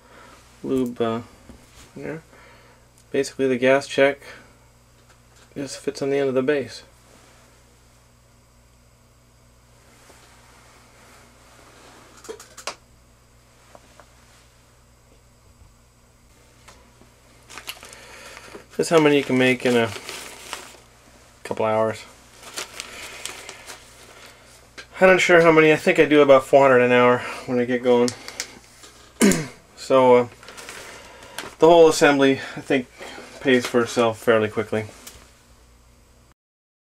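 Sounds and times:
steady low hum: 0:00.0 - 0:36.3
faint handling rustle: 0:09.8 - 0:12.3, 0:16.5 - 0:25.5, 0:30.2 - 0:35.4.

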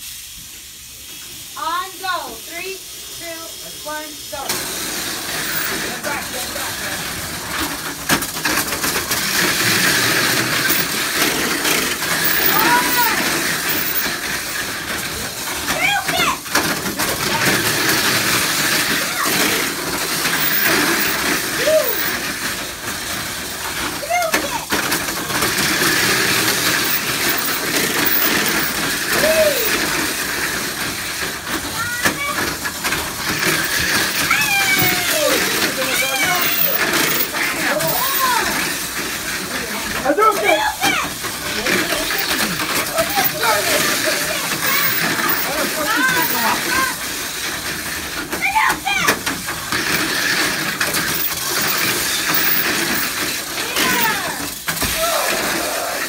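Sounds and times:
high-pitched toy car motor whir: 0:02.2 - 0:56.0
people calling out: 0:12.3 - 0:13.4, 0:21.5 - 0:22.2, 0:29.1 - 0:29.9, 0:34.2 - 0:38.7, 0:53.6 - 0:56.0.

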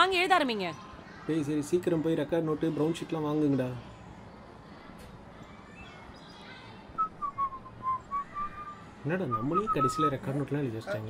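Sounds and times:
whistled tune: 0:07.0 - 0:10.3.

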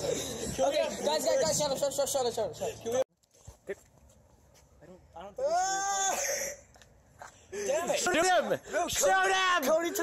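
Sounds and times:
boy's drawn-out cry: 0:05.4 - 0:06.6.

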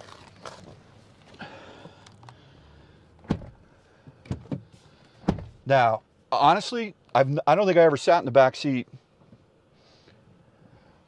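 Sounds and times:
rustling and shuffling: 0:00.0 - 0:02.4.

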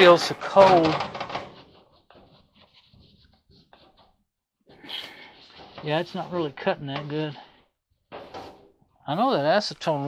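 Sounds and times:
rag rubbing surface: 0:00.5 - 0:04.2, 0:04.8 - 0:07.6.

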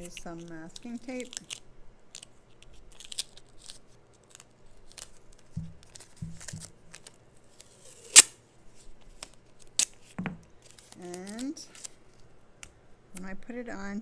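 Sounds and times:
tape tearing: 0:00.0 - 0:08.4, 0:09.0 - 0:12.2
tape clicks and rustles: 0:00.0 - 0:12.8
dull thumps: 0:05.5 - 0:06.7.

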